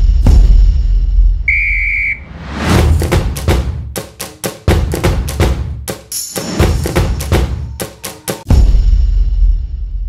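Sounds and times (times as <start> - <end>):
whistle blast: 1.5 - 2.4
quick drum hits: 2.8 - 8.8.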